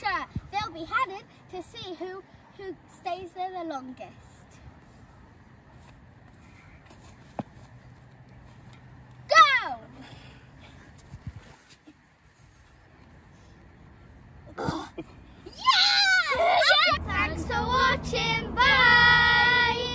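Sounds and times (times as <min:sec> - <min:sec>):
child shouting: 0:15.5 - 0:17.0
child squealing: 0:15.5 - 0:17.0.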